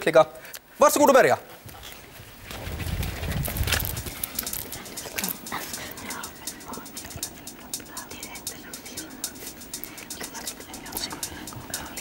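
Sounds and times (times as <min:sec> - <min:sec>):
paper rustling: 0:02.0 - 0:05.4.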